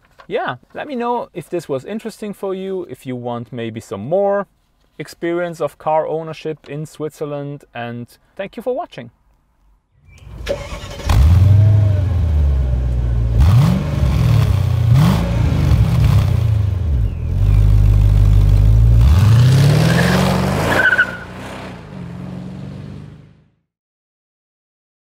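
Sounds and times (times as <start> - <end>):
car engine revving: 10.2 - 23.4.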